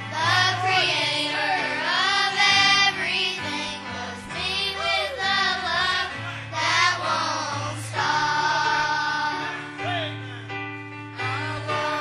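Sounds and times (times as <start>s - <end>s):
children's choir singing: 0.0s - 9.7s, 11.2s - 12.0s
musical accompaniment: 0.0s - 12.0s.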